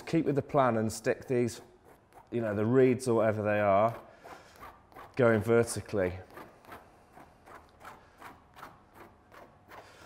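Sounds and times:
paintbrush scraping paint on canvas: 1.0 - 10.0.

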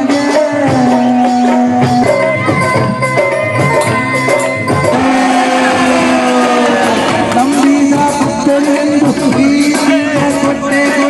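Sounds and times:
man holding a long note: 4.9 - 7.9.

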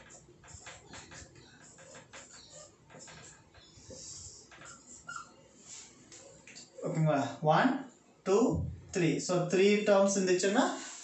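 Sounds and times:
marker squeak: 0.0 - 6.8
marker writing on whiteboard: 0.0 - 6.9.

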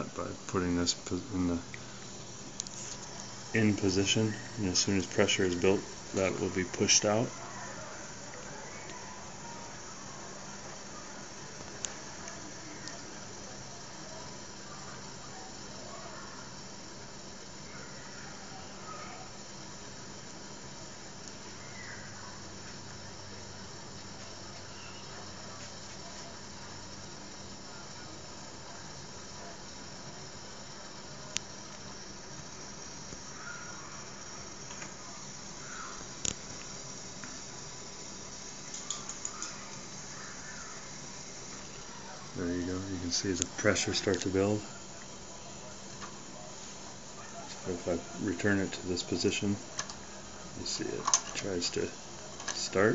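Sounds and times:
toy steam engine boiler hissing: 0.0 - 52.9
sharp clicks: 38.7 - 39.8.

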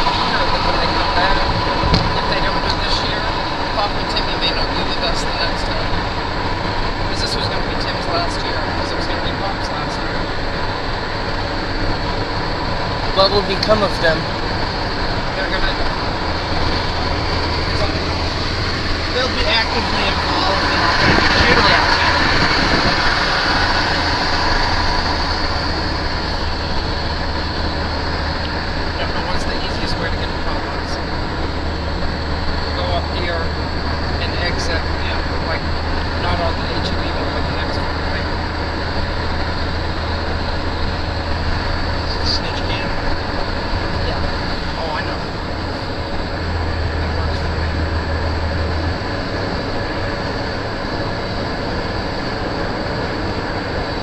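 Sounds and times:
low engine rumble: 0.0 - 54.0.

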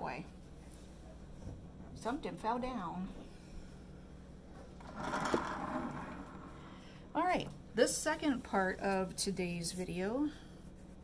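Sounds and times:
scale scraping across countertop: 4.8 - 6.8.

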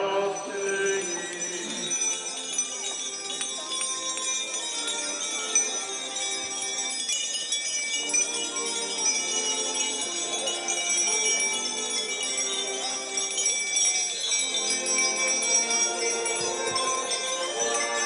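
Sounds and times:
altar bells jangling: 0.0 - 18.0.

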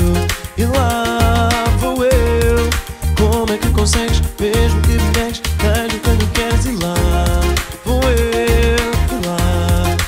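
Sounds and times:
acoustic guitar strumming: 0.0 - 10.0
man singing: 0.0 - 10.0.

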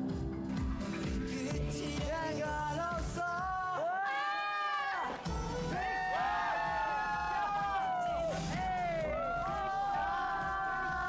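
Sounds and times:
pop music: 0.0 - 11.0
young men screaming: 3.4 - 11.0.

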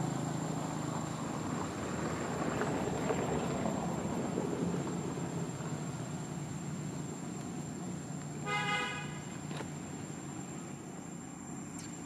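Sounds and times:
vehicle horn toot: 8.4 - 9.3.

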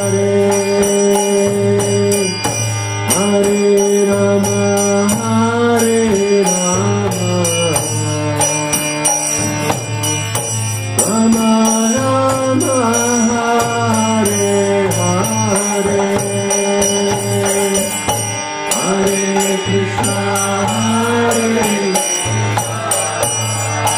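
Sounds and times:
man chanting: 0.0 - 9.8, 11.0 - 23.9
hand cymbals: 0.0 - 23.9
harmonium chords and drone: 0.0 - 23.9.

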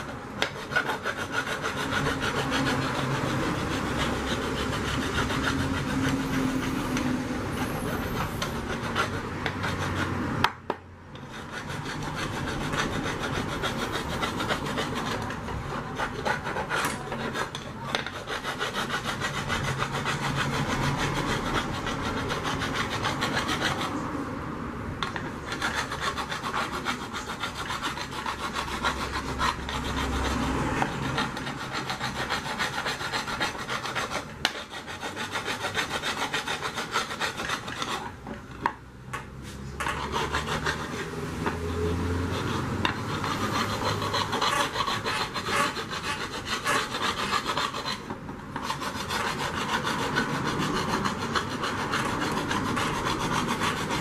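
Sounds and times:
metal tool scraping metal rim: 0.0 - 10.5, 11.1 - 24.0, 25.0 - 54.0.

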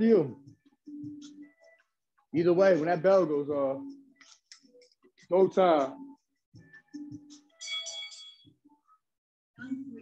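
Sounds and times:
boxing bell ringing: 7.6 - 8.6.

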